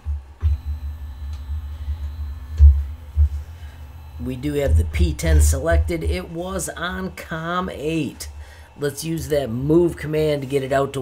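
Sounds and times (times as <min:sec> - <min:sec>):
stepper motor whine: 0:00.0 - 0:10.6
heavy low rumbling: 0:00.4 - 0:07.1
strong thumps: 0:01.4 - 0:06.0.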